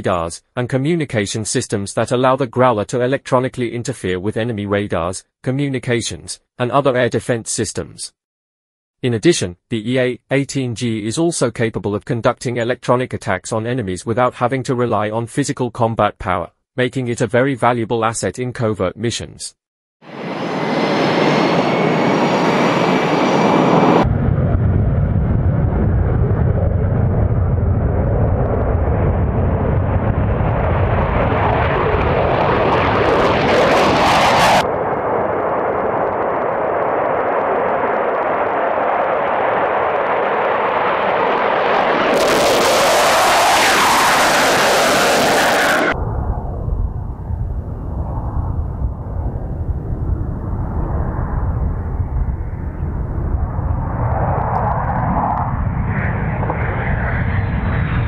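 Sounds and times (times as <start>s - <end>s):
jet engines roaring: 20.1s - 58.0s.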